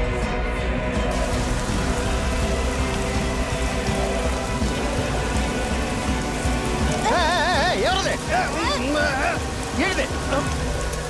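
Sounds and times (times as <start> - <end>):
background music: 0.0 - 11.0
garden hose spraying water: 1.1 - 11.0.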